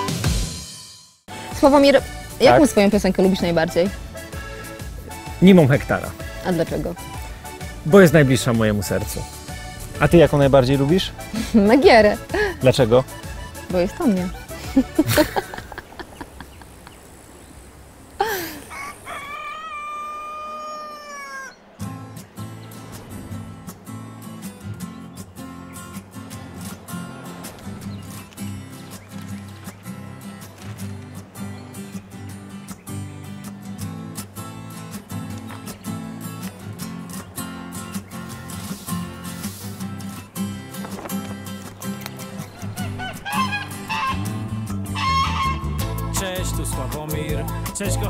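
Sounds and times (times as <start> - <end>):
upbeat song with bass line: 2.1 - 15.4, 42.6 - 48.0
rooster crowing: 18.5 - 21.8, 42.6 - 45.8
goose honking: 42.4 - 46.0
music with a steady beat: 43.7 - 48.0.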